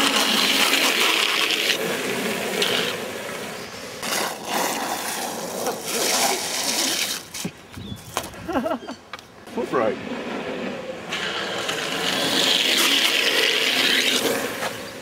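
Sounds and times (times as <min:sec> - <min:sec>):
skateboard wheels roaring on asphalt: 0:00.0 - 0:15.0
wind: 0:00.0 - 0:15.0
scrapes and knocks on road: 0:09.1 - 0:15.0.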